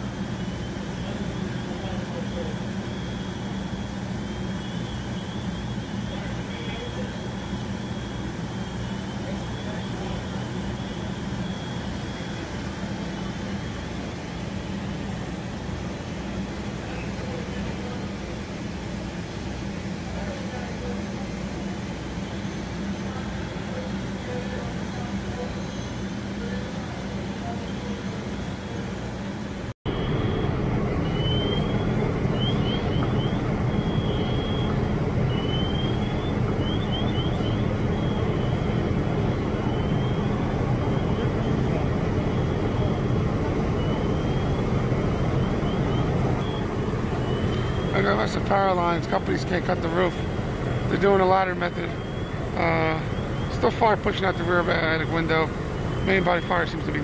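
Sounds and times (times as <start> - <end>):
fire truck engines droning: 0.0 - 57.0
faint high chirps: 29.9 - 38.8, 39.6 - 57.0.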